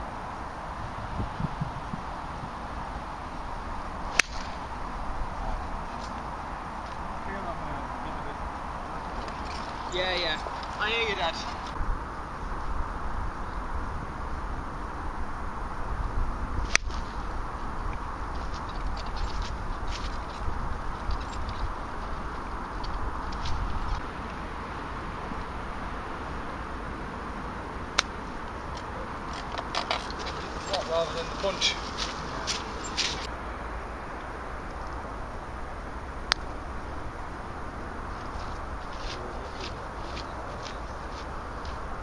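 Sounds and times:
golf club hitting ball: 4.1 - 4.8, 16.7 - 17.0, 27.9 - 28.2.

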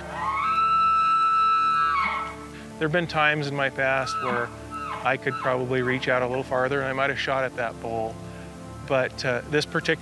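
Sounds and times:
elk bugling: 0.0 - 7.5
soft background music: 0.0 - 10.0.

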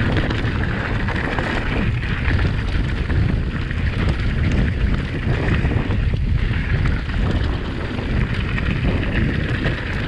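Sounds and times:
bike clicks and rattles: 0.0 - 10.0
bike tyres rolling on gravel: 0.0 - 10.0
wind buffeting microphone: 0.0 - 10.0.

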